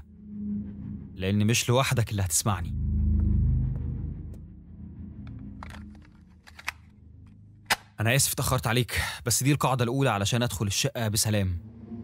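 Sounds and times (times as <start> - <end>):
low rumbling drone: 0.0 - 7.7, 11.5 - 12.0.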